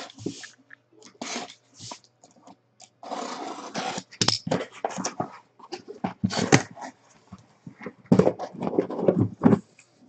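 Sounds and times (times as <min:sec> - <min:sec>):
cardboard scraping and rustling: 0:03.0 - 0:07.0, 0:07.7 - 0:09.7.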